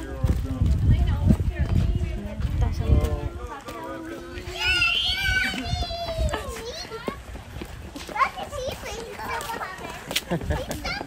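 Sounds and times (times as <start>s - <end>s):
young children calling and chattering: 0.0s - 11.0s.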